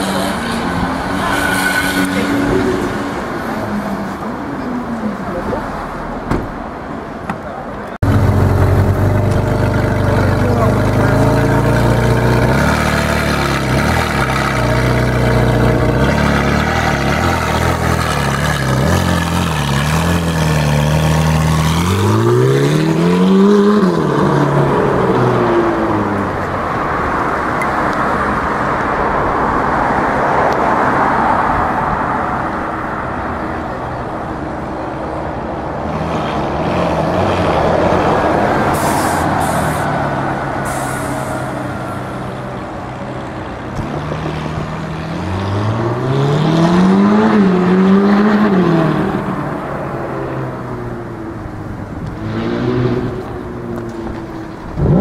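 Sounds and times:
street noise: 0.0 - 55.0
car engine idling and revving: 7.8 - 29.4, 41.6 - 55.0.

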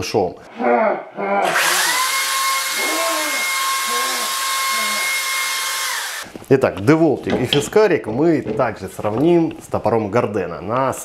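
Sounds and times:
hair dryer whining: 1.4 - 6.3.

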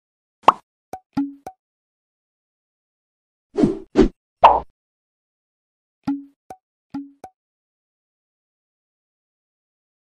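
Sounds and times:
cartoon pops: 0.4 - 0.6
quick blip and tick clicks: 6.0 - 7.4.

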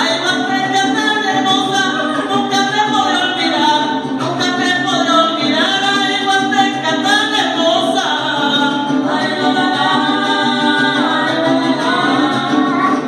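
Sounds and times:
strummed small guitar: 0.0 - 13.0.

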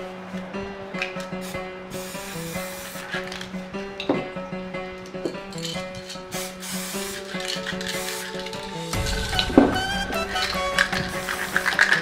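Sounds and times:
background music: 0.0 - 12.0
spray paint can hissing: 1.0 - 3.6, 5.5 - 12.0.

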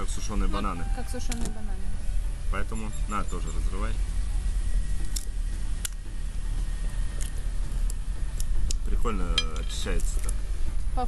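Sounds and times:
steady low rumble: 0.0 - 11.0
brittle pod shells snapping: 7.2 - 8.8.

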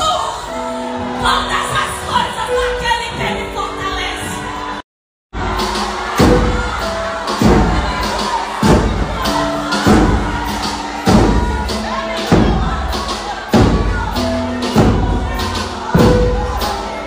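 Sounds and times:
crowd cheering: 0.0 - 4.8, 5.4 - 17.0
music: 0.0 - 4.8, 5.4 - 17.0
hand drums beating: 5.6 - 17.0.

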